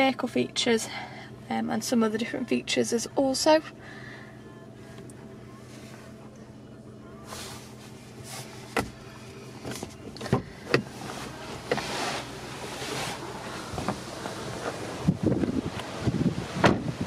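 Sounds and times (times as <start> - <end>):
car door shutting: 7.3 - 17.0
wind rumbling on microphone: 13.4 - 17.0.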